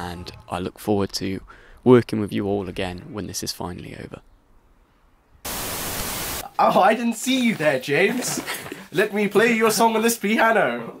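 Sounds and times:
static hiss: 0:05.4 - 0:06.6.

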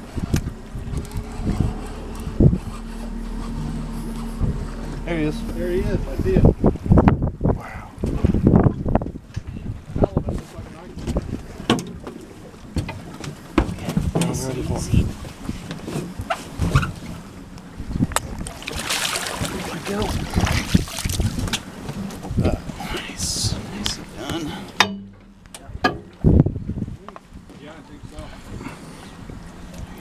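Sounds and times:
wind buffeting microphone: 0:00.0 - 0:24.6, 0:25.3 - 0:30.0
water lapping against boat: 0:00.0 - 0:30.0.

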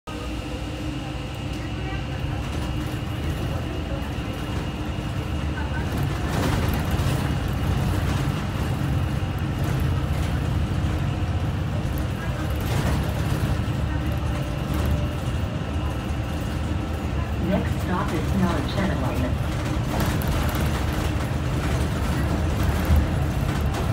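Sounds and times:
bus engine and road drone: 0:00.1 - 0:23.9.

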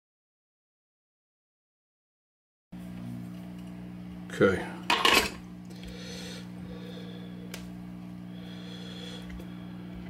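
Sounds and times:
guitar amp electrical hum: 0:02.8 - 0:10.0.

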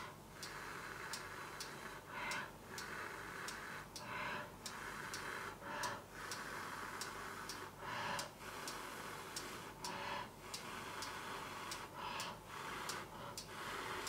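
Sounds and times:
hiss: 0:00.0 - 0:14.0
rapid even ticking: 0:00.0 - 0:14.0.

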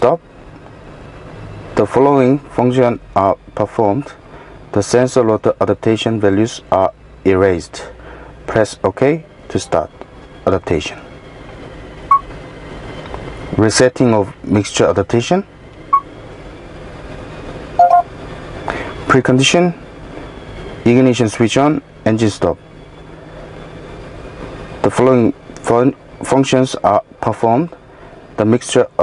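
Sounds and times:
low background rumble and hum: 0:00.0 - 0:29.0
short electronic beep: 0:12.1 - 0:12.3, 0:17.8 - 0:18.1.

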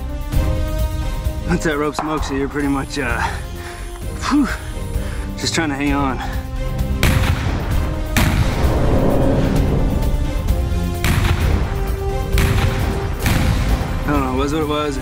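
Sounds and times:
background music: 0:00.0 - 0:15.0
explosive pyrotechnic blasts: 0:08.2 - 0:13.7.

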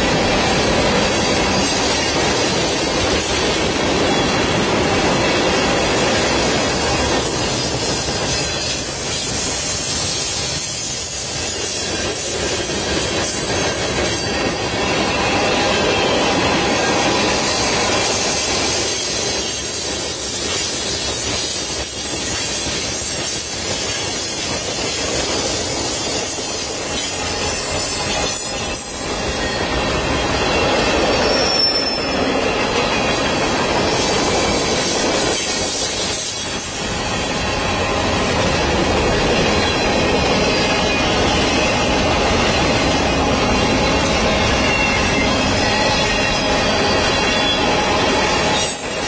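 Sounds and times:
train wheels rumbling on rail: 0:00.0 - 0:49.0
high wheel squeal: 0:26.1 - 0:37.4, 0:39.3 - 0:49.0.

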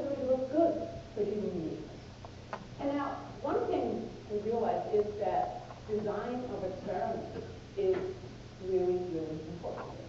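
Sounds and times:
woman lecturing: 0:00.0 - 0:02.0, 0:02.8 - 0:10.0
low steady hum: 0:00.0 - 0:10.0.

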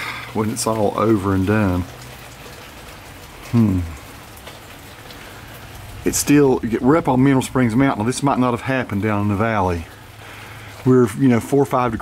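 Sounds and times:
freezing rain pattering on branches: 0:00.0 - 0:12.0.

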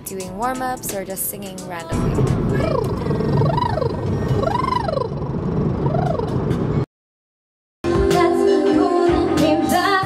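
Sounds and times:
car road noise: 0:00.0 - 0:06.9.

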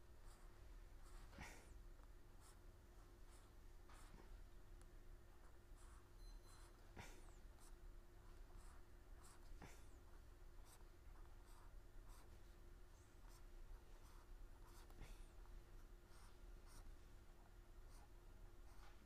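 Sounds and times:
faint steady hum: 0:00.0 - 0:19.0
scratching strokes of writing: 0:05.4 - 0:17.0.

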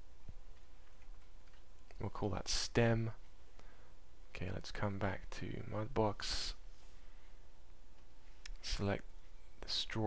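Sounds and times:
faint whine: 0:00.0 - 0:10.0
low electrical hum: 0:00.0 - 0:10.0.

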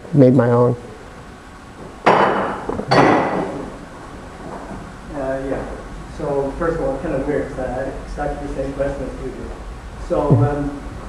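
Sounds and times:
sharp ringing knocks: 0:02.0 - 0:03.6.

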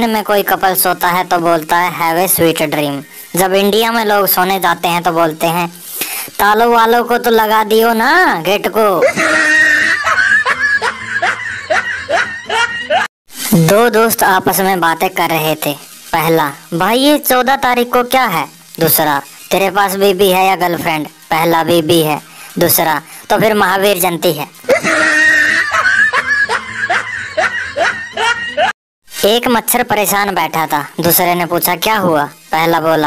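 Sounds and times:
high-pitched giggling laugh: 0:09.0 - 0:13.1, 0:24.6 - 0:28.8.

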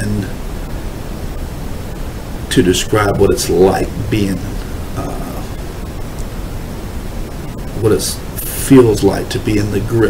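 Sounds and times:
man speaking: 0:00.0 - 0:00.4, 0:02.5 - 0:05.6, 0:07.8 - 0:10.0
steady background hiss: 0:00.0 - 0:10.0.

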